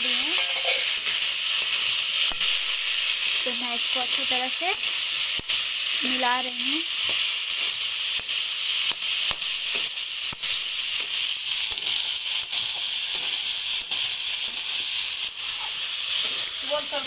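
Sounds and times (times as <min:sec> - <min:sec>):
vegetables sizzling in a pan: 0:00.0 - 0:17.0
metal spatula scraping a pan: 0:00.2 - 0:01.7, 0:15.5 - 0:16.6.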